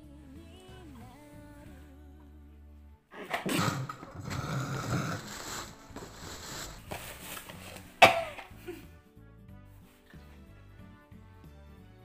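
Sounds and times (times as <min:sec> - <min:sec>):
woman gagging and coughing: 0:03.2 - 0:05.3, 0:08.0 - 0:08.9.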